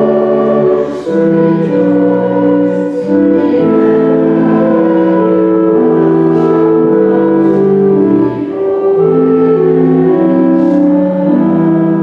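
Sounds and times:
church organ playing chords: 0.0 - 12.0.

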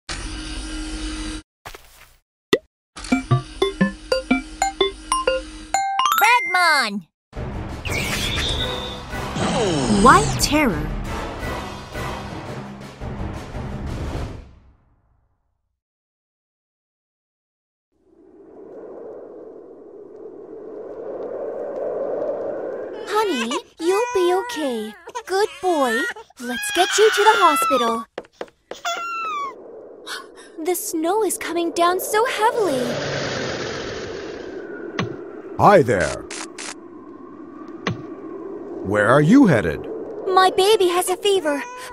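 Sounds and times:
baby crying wail: 23.0 - 28.0, 28.8 - 29.6, 41.6 - 41.9.

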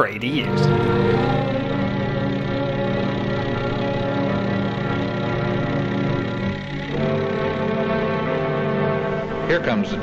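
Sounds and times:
held orchestral chord: 0.0 - 10.0
steady engine-like drone: 0.4 - 10.0.

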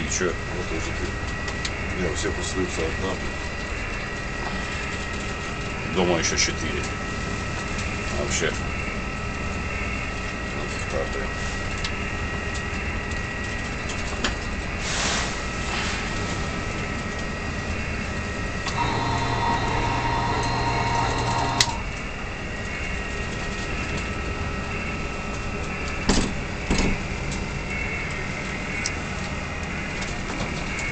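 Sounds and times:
machinery drone: 0.0 - 30.9
held tone: 18.7 - 22.0.

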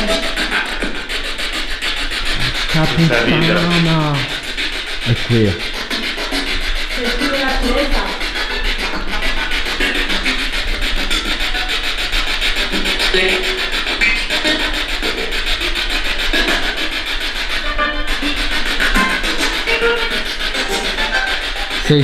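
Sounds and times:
snatches of voices: 0.0 - 15.3, 16.2 - 22.0
snatches of music: 0.0 - 22.0
chopped radio static: 2.4 - 4.4.

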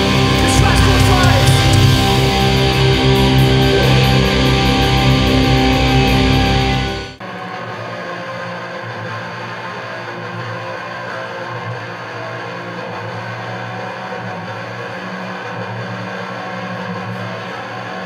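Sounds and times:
sustained guitar drone: 0.0 - 17.8.

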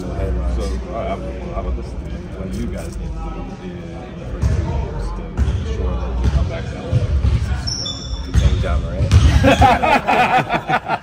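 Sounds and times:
shoe squeak: 7.6 - 8.9.

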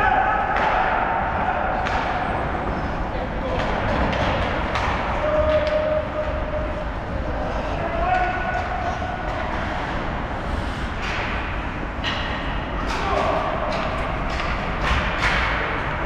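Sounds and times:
people shouting: 0.0 - 2.4.

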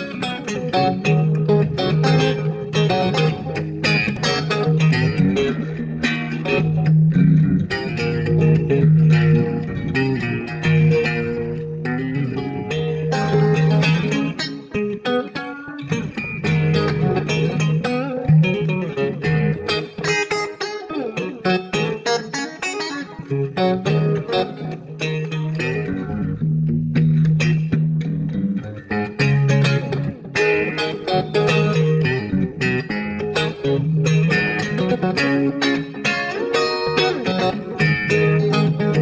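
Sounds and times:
electric guitar lead: 0.0 - 39.0
bass line: 0.8 - 14.3, 15.8 - 19.7, 25.1 - 30.2, 37.6 - 39.0.

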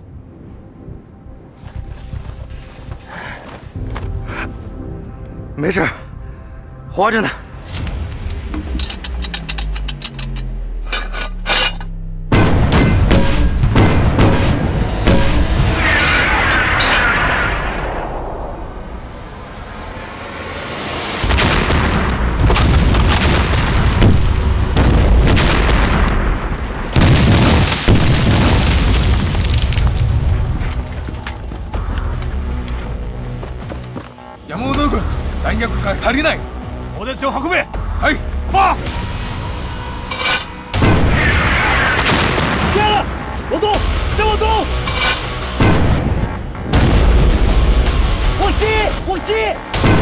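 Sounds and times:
film score: 0.0 - 50.0
artillery shells exploding: 21.2 - 31.0.

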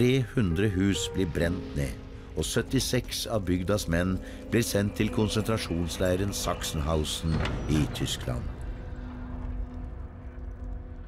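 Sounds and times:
low rumbling drone: 0.4 - 11.0.

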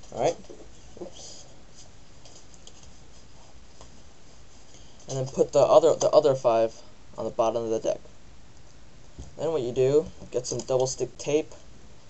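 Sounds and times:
rubbing and handling noise: 0.0 - 7.3
steady low hiss: 0.0 - 12.0.

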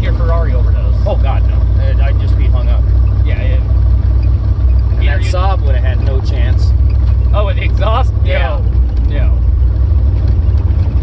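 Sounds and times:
car driving on dirt road: 0.0 - 11.0.

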